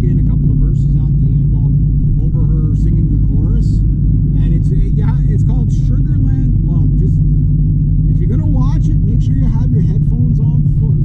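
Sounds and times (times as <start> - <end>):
man talking: 0.0 - 3.8, 4.4 - 7.3, 8.1 - 11.0
car engine and tyres droning: 0.0 - 11.0.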